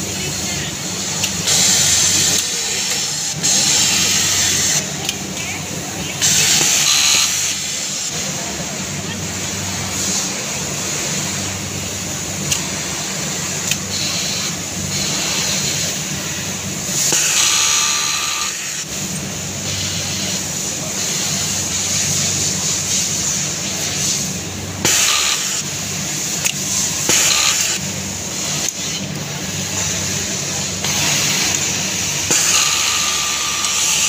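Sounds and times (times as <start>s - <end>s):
sewing machine whirring: 0.0s - 34.0s
loud hiss: 21.8s - 34.0s.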